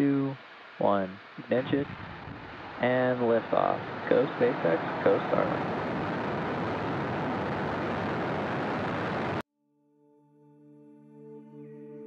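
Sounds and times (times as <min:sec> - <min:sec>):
rocket engines roaring: 0:00.0 - 0:09.4.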